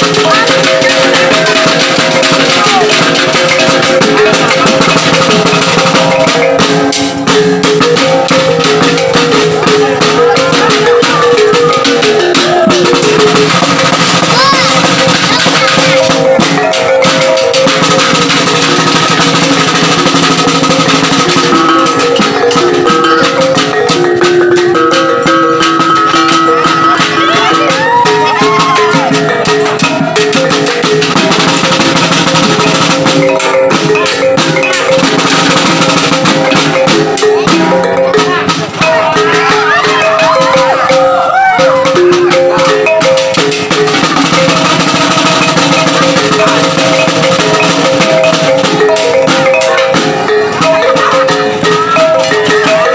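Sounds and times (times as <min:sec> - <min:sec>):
fast drum and gong beat: 0:00.0 - 0:52.9.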